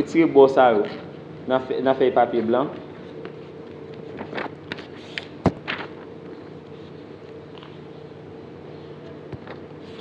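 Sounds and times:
faint steady hum: 0.0s - 10.0s
paper crackling: 4.1s - 6.1s.

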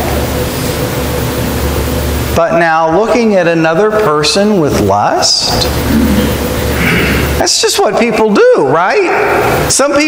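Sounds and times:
low hum: 0.0s - 8.4s.

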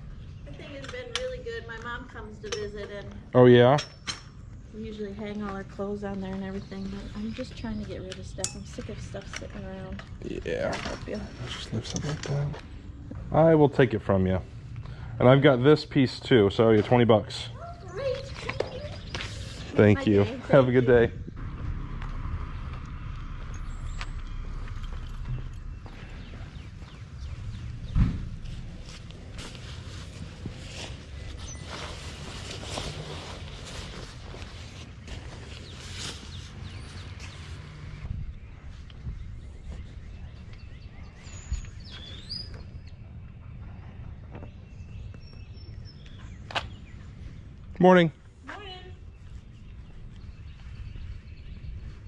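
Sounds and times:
birds chirping: 0.0s - 52.0s
steady low rumble: 12.5s - 52.0s
footsteps on concrete: 23.4s - 31.6s
soft thump: 27.8s - 28.5s
wind on microphone: 38.0s - 41.8s.

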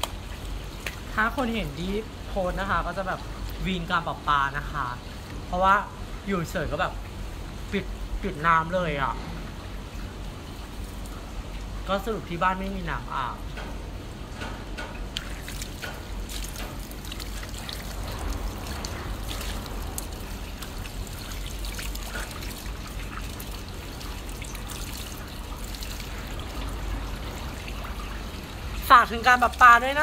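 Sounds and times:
water splashing: 14.9s - 30.0s
water running from hose: 15.1s - 30.0s.

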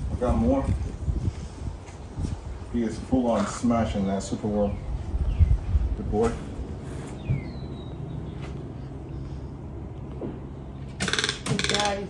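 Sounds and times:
toucan harsh rattling croaks: 11.0s - 12.0s.

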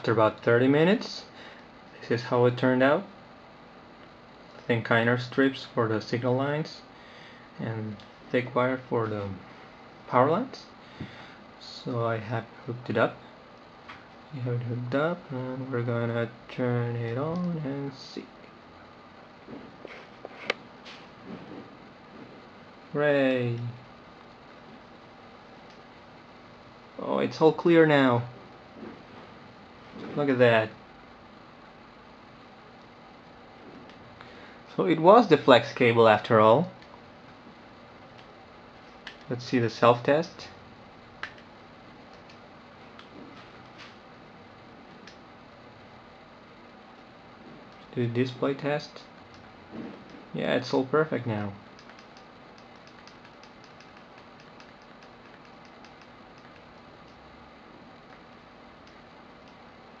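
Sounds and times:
faint steady hiss: 0.0s - 60.0s
low hum: 0.0s - 60.0s.

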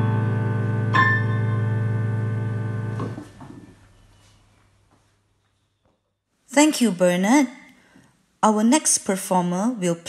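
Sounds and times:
digital piano chord: 0.0s - 3.2s.

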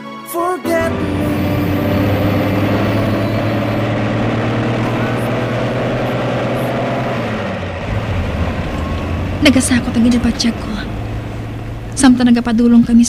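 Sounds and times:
vehicle engine humming: 0.8s - 13.0s.

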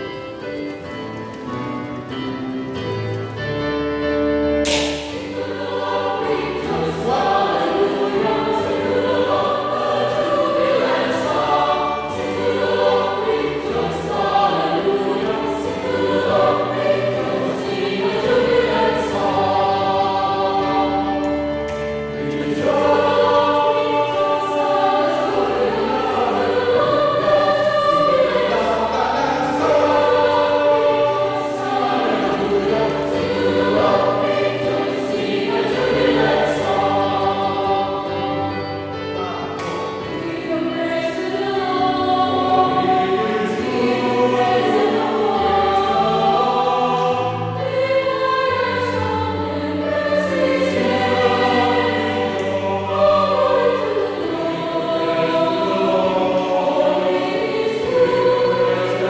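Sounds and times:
electronic keyboard accompaniment: 0.0s - 59.0s
mixed choir singing: 0.0s - 59.0s.

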